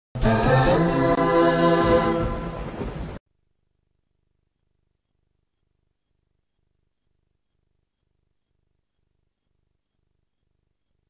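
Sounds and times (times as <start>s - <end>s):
rain sound effect: 0.3s - 3.2s.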